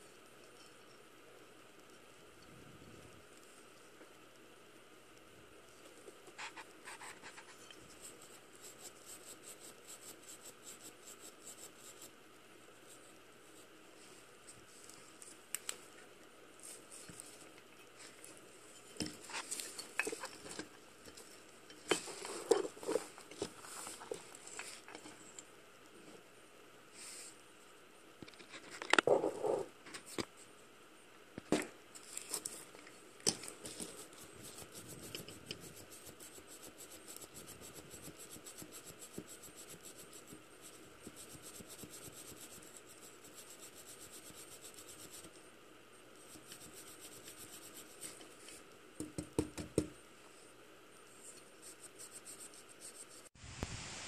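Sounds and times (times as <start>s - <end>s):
rapid steady scratching: 5.9s - 13.8s, 33.6s - 45.4s, 46.2s - 48.2s.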